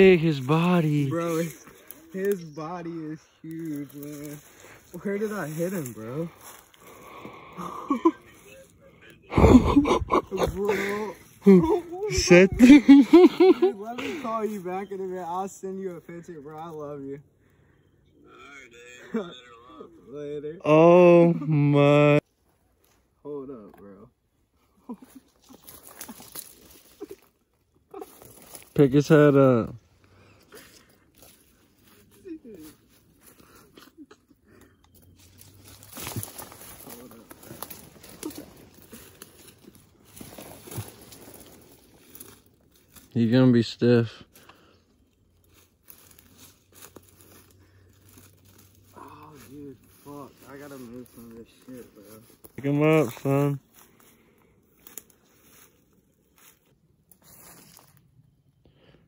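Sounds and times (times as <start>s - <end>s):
rustling of dry leaf litter: 0.0s - 7.2s, 24.9s - 29.5s, 30.4s - 43.6s, 45.0s - 58.4s.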